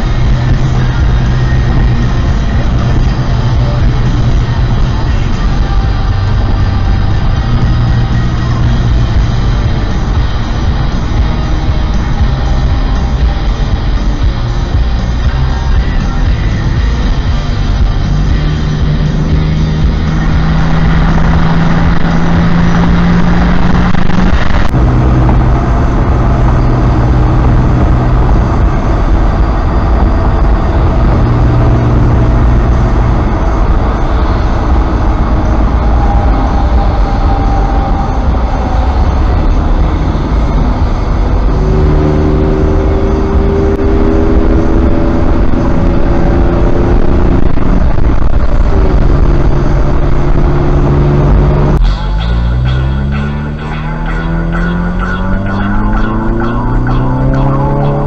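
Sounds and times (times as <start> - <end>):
engine and tyre rumble: 0.0 - 58.0
held low tones: 0.0 - 58.0.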